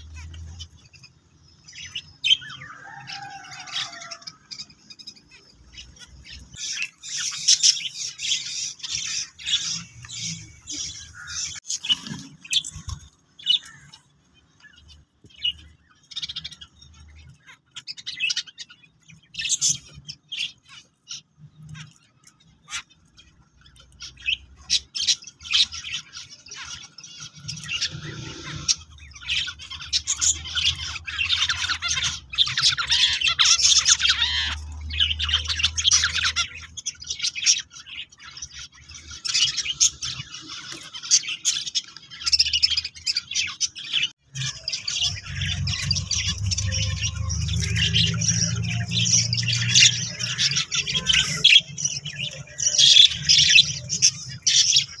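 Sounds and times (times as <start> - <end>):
finches giving raspy calls: 24.0 - 55.0.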